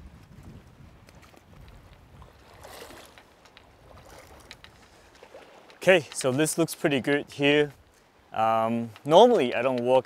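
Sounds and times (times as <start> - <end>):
wind on microphone: 0.0 - 5.0.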